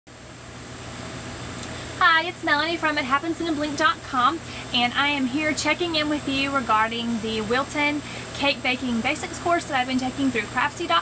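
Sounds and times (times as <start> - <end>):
low hum and hiss: 0.1 - 11.0.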